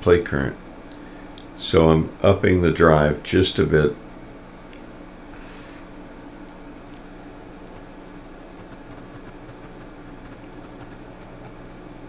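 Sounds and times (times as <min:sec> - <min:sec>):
amplifier humming: 0:05.9 - 0:12.0.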